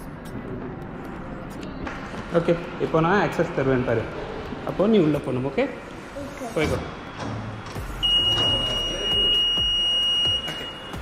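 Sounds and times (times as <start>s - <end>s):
turnstile buzzer tone: 7.8s - 11.0s.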